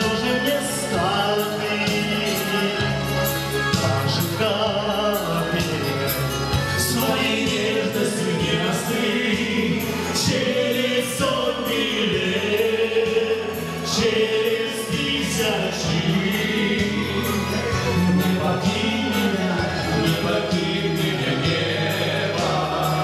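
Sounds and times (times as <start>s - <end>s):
amplified band with steady beat: 0.0s - 23.0s
man singing into a microphone: 0.0s - 23.0s.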